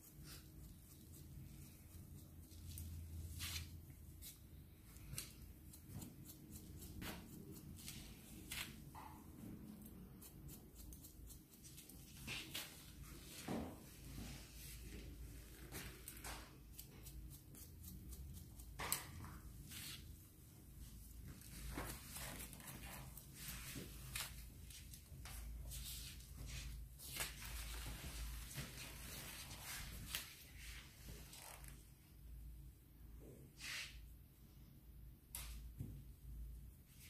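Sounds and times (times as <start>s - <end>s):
scissors snipping hair: 9.8s - 12.1s.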